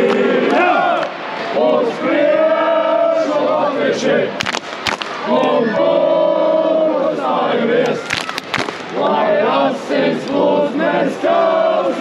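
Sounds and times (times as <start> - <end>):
football crowd chanting: 0.0 - 4.5, 5.1 - 12.0
sharp hand claps: 4.4 - 5.2, 7.8 - 9.0.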